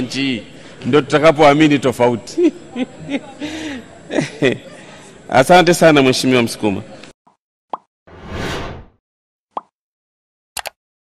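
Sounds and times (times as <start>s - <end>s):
whoosh: 8.1s - 9.0s.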